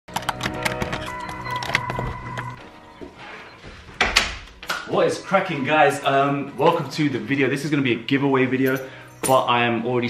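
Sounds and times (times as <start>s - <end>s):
held music chord: 4.9s - 9.0s.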